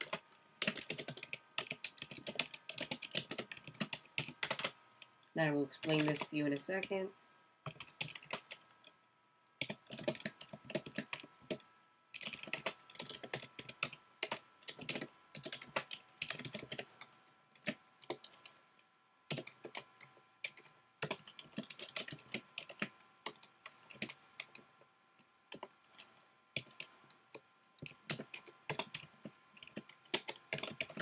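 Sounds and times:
typing on computer keyboard: 0.0s - 4.8s, 7.6s - 8.7s, 9.6s - 18.6s, 19.3s - 24.7s, 25.5s - 31.0s.

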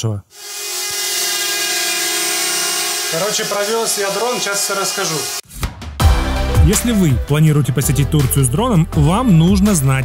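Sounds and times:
drone propellers buzzing: 0.4s - 5.4s.

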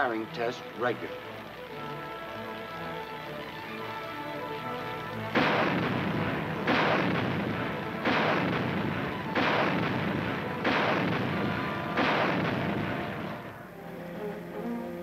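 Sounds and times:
anti-aircraft gun firing: 5.2s - 13.6s.

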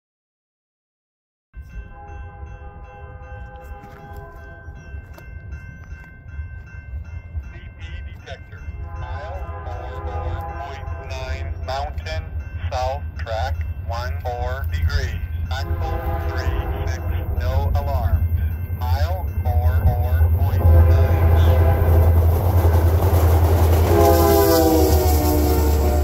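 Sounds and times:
locomotive horn chord: 1.8s - 5.0s, 7.6s - 13.3s, 15.4s - 18.2s, 19.0s - 26.0s
diesel locomotive rumble: 2.0s - 26.0s.

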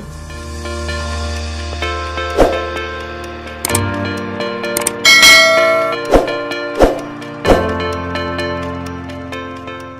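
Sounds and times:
background music: 0.0s - 9.9s
bright bell chime: 5.0s - 6.0s.

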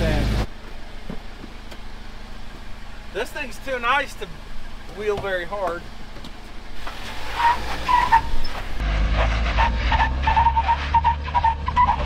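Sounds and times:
vehicle engine idling: 0.0s - 8.8s.

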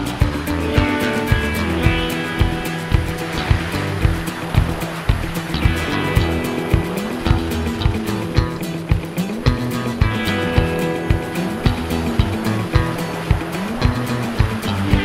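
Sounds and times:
bass guitar: 0.0s - 15.0s
distorted guitar: 0.0s - 15.0s
driving drums: 0.0s - 15.0s
hard rock music: 0.0s - 15.0s.

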